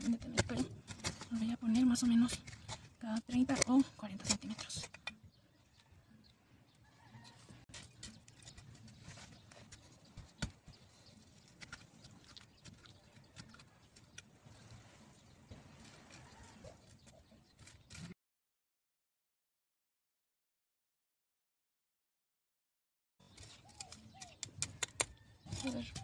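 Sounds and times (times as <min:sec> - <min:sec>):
metal trowel scraping dry soil: 0:00.0 - 0:05.2, 0:07.1 - 0:18.2, 0:23.2 - 0:26.0.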